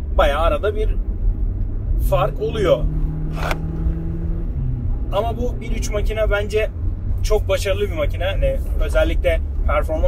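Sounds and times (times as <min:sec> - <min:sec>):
car engine hum: 0:00.0 - 0:10.0
road noise inside car: 0:00.0 - 0:10.0.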